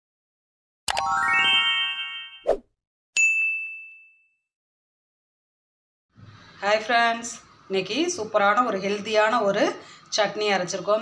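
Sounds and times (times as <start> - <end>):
rising chiming tones: 0.9 - 2.4
notification bell ding: 3.2 - 4.5.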